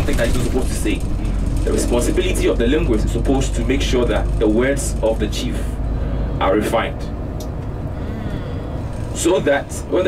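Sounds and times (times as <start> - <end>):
bus engine and road noise: 0.0 - 10.0.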